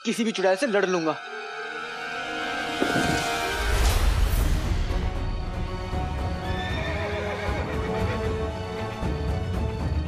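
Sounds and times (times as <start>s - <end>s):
dramatic background music: 0.0s - 10.0s.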